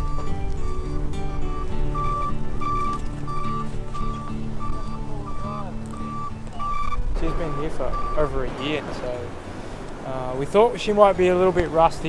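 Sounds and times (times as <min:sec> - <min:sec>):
truck reversing beeper: 0:00.0 - 0:09.8
truck engine: 0:00.0 - 0:12.0
person speaking: 0:07.2 - 0:09.3.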